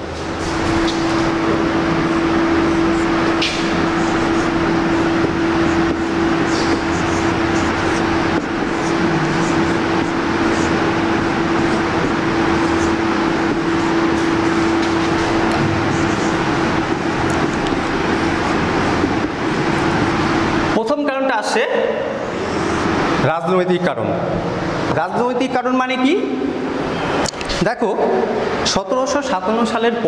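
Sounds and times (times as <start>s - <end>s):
loud mechanical hum: 0.0s - 30.0s
marker pen squeaking on whiteboard: 0.4s - 20.2s.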